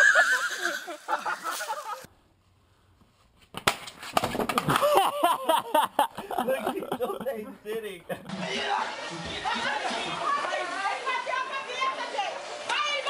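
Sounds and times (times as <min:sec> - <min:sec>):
laughter: 0:00.0 - 0:02.1, 0:04.7 - 0:10.1.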